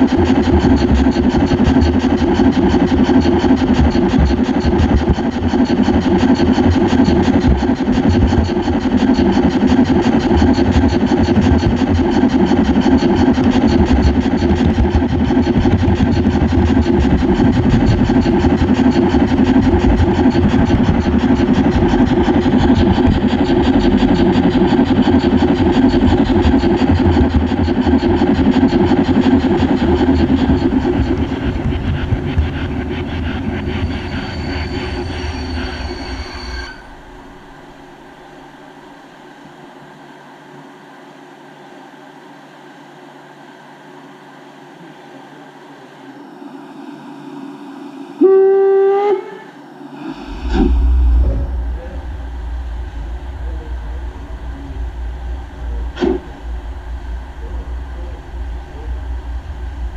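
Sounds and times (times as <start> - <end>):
model train rolling and gear noise: 0.0 - 40.6
faint steady hum: 0.0 - 59.9.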